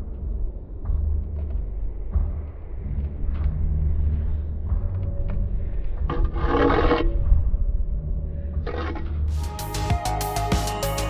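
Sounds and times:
steady low rumble: 0.0s - 9.4s
trowel scraping mortar: 6.1s - 7.1s.

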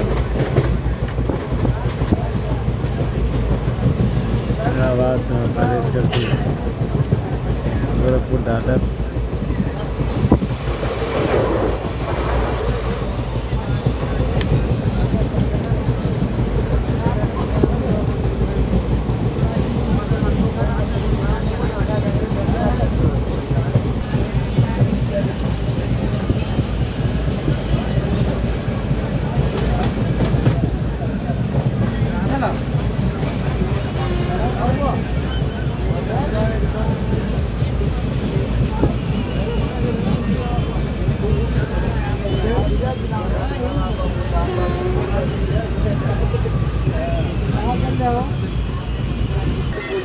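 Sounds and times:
train rumbling: 0.0s - 50.0s
wheels clattering on rails: 0.0s - 50.0s.

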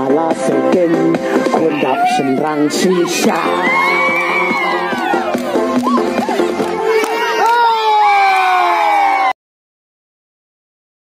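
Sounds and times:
man singing through loudspeaker: 0.0s - 5.4s.

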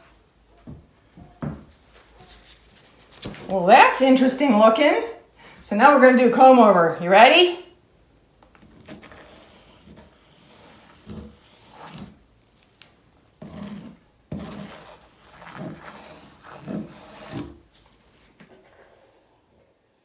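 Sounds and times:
comb scraping over canvas: 8.7s - 12.7s, 13.4s - 19.4s.

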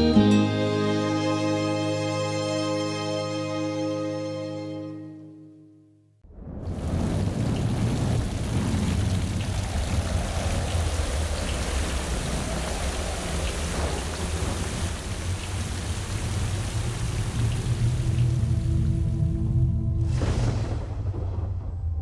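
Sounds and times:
low thunder rumble: 6.2s - 22.0s
heavy rain: 6.3s - 19.4s.

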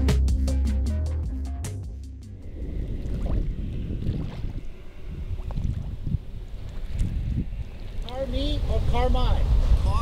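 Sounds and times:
wind buffeting microphone: 2.2s - 10.0s.

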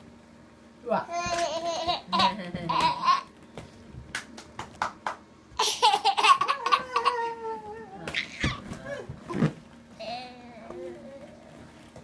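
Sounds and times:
child laughing: 5.6s - 8.6s
soft child vocal sounds: 10.0s - 11.7s.

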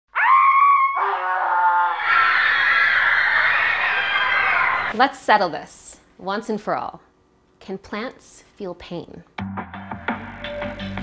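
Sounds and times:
lower held scream: 0.1s - 4.9s
many layered screams: 0.1s - 4.9s.

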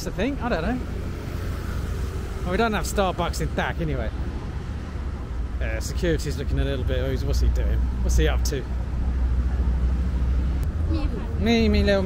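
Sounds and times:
street noise rumble: 0.0s - 12.0s.

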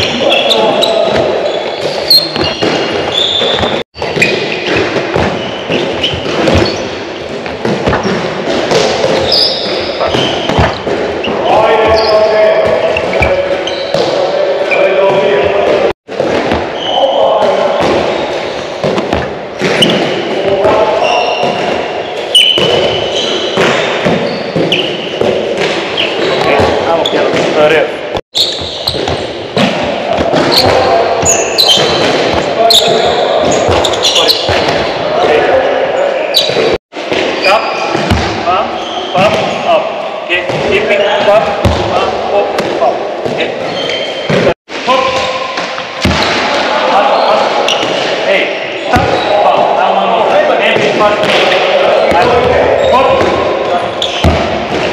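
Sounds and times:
indistinct voices: 0.0s - 4.8s, 8.7s - 29.0s, 29.6s - 54.9s.

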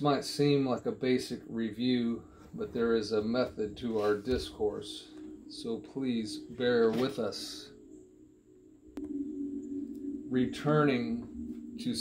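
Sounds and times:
ambient music drone: 0.0s - 12.0s.

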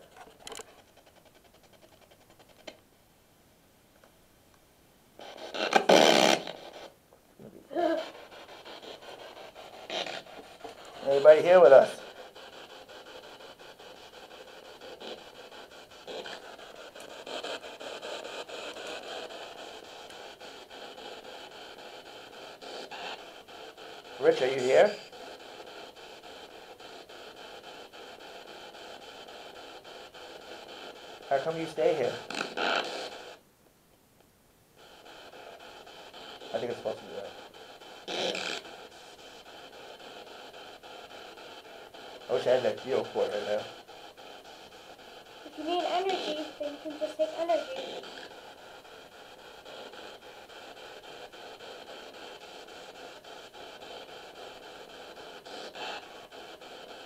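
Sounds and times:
radio static hiss: 0.0s - 33.5s, 34.2s - 57.0s.

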